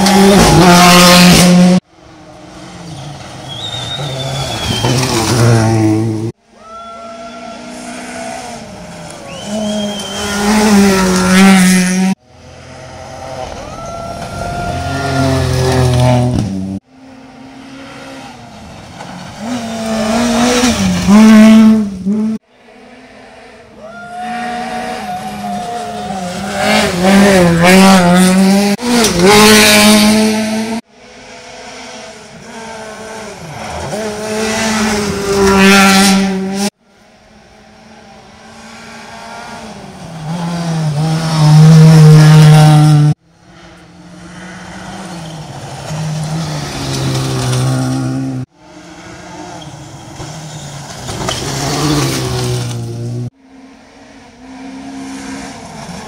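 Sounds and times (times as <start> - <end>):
rally car engines at full throttle: 0.0 - 6.5, 7.1 - 56.0.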